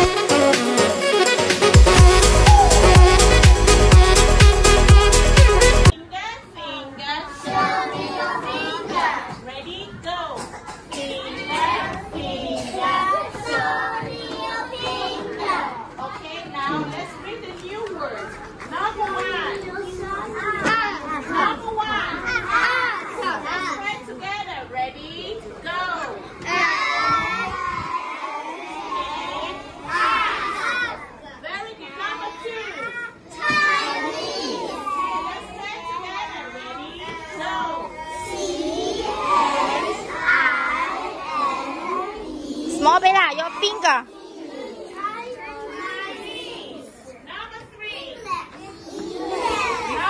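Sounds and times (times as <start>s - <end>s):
young children talking: 2.1s - 3.8s, 5.9s - 50.0s.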